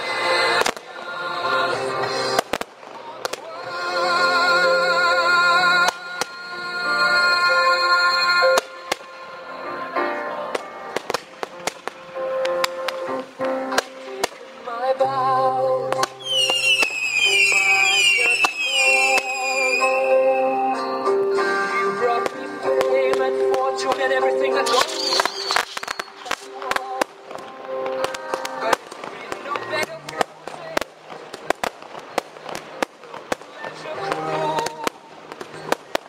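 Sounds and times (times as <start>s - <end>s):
fireworks bangs: 0.0s - 9.2s, 10.1s - 15.1s, 15.8s - 36.0s
music with singing: 0.0s - 36.0s
loud music with held chords: 11.9s - 25.6s.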